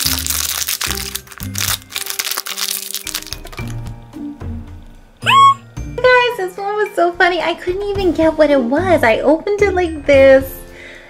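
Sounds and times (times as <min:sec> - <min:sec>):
plastic wrapper crinkling: 0:00.0 - 0:03.9
background music: 0:00.0 - 0:11.0
short rising laugh: 0:05.2 - 0:05.6.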